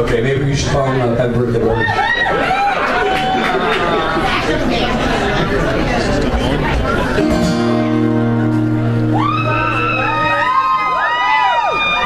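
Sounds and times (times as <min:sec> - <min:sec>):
audience whooping and cheering: 0:01.7 - 0:04.4, 0:08.9 - 0:12.0.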